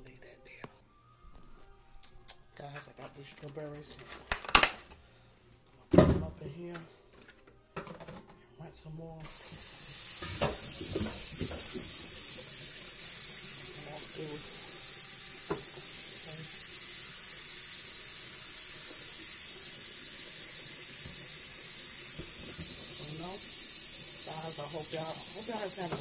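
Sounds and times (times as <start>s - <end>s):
steady hiss: 9.2s - 26.0s.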